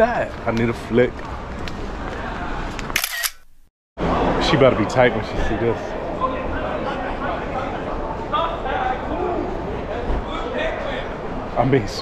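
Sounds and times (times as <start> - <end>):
street noise: 0.0 - 12.0
camera shutter clicking: 3.0 - 3.5.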